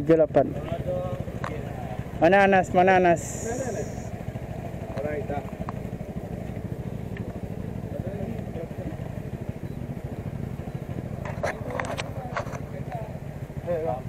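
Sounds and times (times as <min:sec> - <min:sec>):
people talking: 0:00.0 - 0:04.1, 0:04.9 - 0:05.6, 0:07.8 - 0:09.1, 0:11.2 - 0:14.0
motorcycle engine idling: 0:00.0 - 0:14.0.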